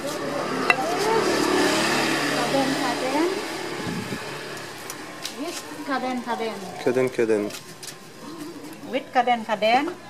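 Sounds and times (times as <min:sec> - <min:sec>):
motor vehicle passing: 0:00.0 - 0:07.5.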